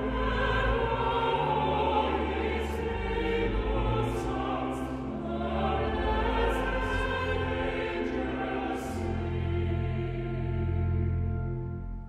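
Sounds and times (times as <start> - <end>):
mixed choir singing: 0.0 - 11.7.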